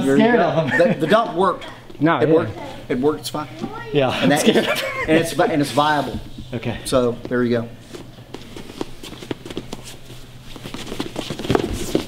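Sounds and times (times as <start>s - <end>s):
steady low hum: 0.0s - 12.0s
feet shuffling on gym mats: 5.1s - 12.0s
clothing rustle: 7.8s - 12.0s.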